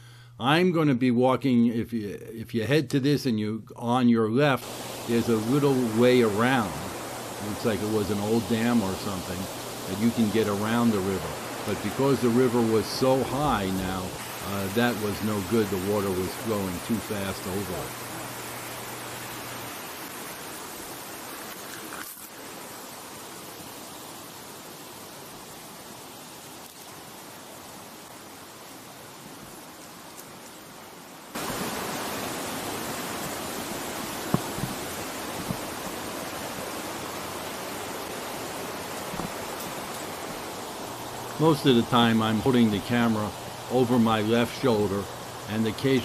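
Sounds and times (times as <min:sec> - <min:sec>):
river rushing over rocks: 0:04.6 - 0:46.0
short knocks: 0:34.2 - 0:34.8.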